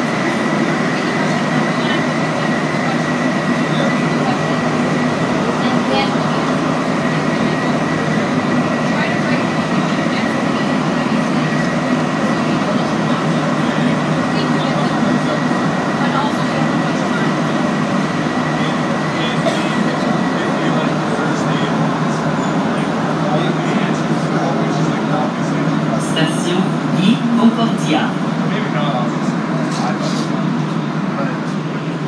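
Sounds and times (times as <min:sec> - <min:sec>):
train rumble in tunnel: 0:00.0 - 0:32.0
high whine: 0:02.9 - 0:32.0.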